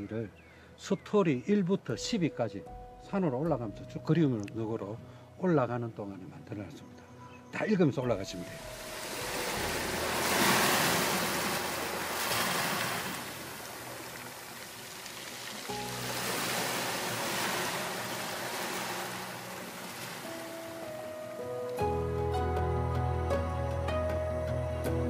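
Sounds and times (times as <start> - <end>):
soft background music: 0.0 - 25.0
waves breaking on rocky shore: 8.5 - 21.1.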